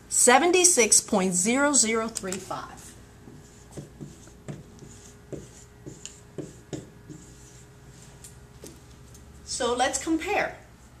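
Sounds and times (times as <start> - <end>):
marker writing on whiteboard: 2.1 - 8.8.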